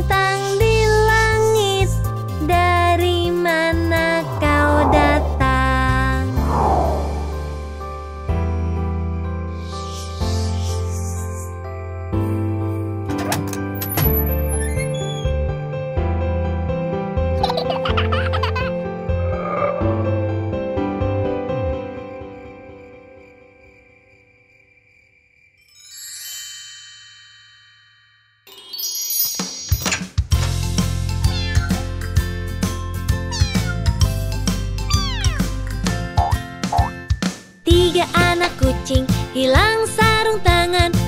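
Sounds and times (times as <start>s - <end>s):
gentle children's music: 0.0s - 6.3s, 28.4s - 41.0s
falling sliding sound effects: 4.3s - 8.2s
high-pitched childlike giggle: 17.4s - 18.8s
cartoon kitten meows: 31.2s - 31.9s, 33.2s - 34.0s, 34.9s - 35.6s.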